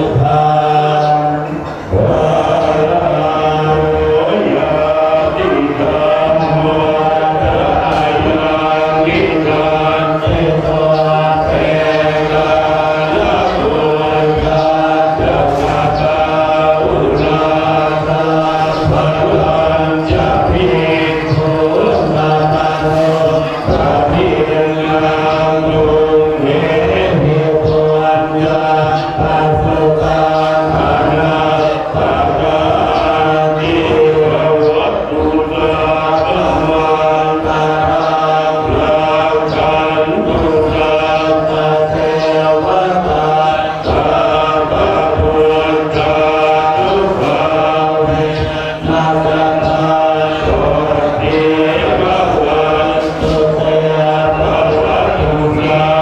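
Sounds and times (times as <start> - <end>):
monks chanting in unison: 0.0 - 56.0.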